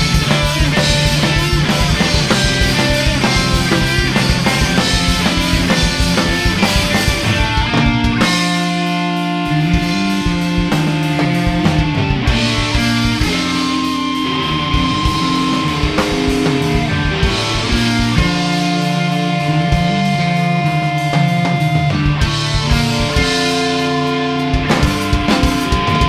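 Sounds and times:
drum beat: 0:00.0 - 0:09.0, 0:09.6 - 0:19.1, 0:21.2 - 0:26.0
guitar: 0:00.0 - 0:26.0
instrumental rock music: 0:00.0 - 0:26.0.

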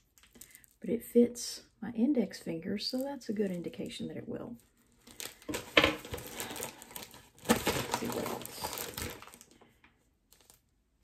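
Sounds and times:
packaging crinkling: 0:00.0 - 0:00.8, 0:04.6 - 0:10.7.

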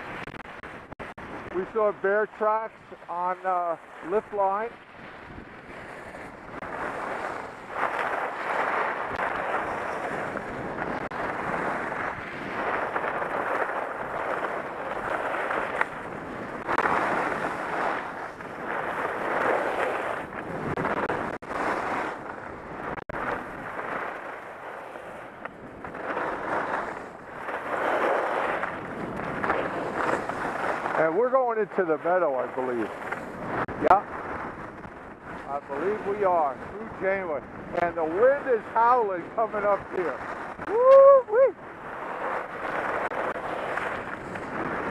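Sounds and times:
wind on camera microphone: 0:00.0 - 0:44.9.

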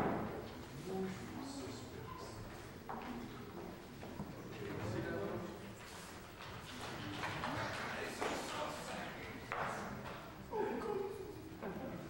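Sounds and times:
faint voices: 0:00.6 - 0:12.0.

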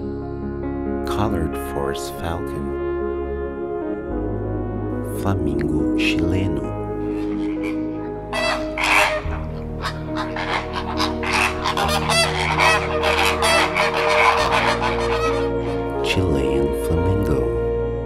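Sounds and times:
soft background music: 0:00.0 - 0:18.0
flamingos calling: 0:06.9 - 0:16.5.

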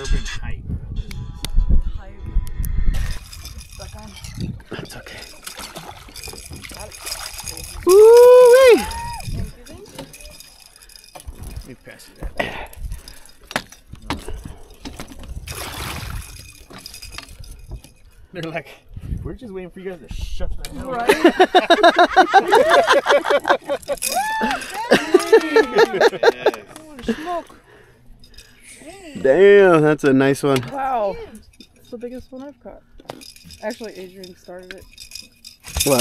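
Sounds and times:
person whooping: 0:07.8 - 0:09.3, 0:24.0 - 0:25.8
knocks and clatter on boat deck: 0:13.5 - 0:15.5.

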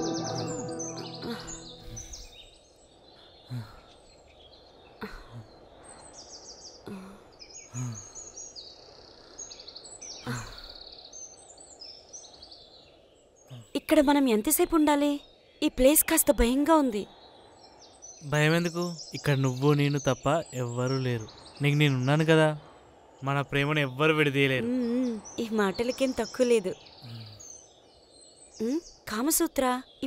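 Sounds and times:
background music: 0:00.0 - 0:02.2
birds chirping: 0:00.0 - 0:30.0.

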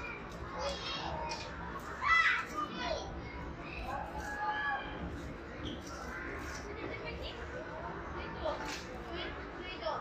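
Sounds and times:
children chattering while playing: 0:00.0 - 0:10.0.

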